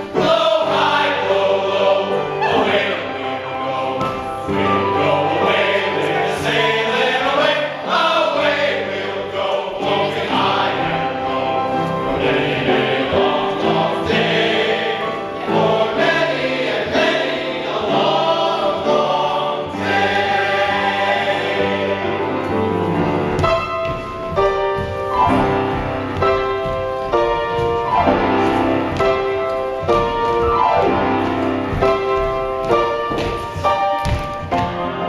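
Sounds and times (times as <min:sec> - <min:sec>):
chorus singing a show tune: 0:00.0 - 0:23.0
musical accompaniment: 0:00.0 - 0:35.0.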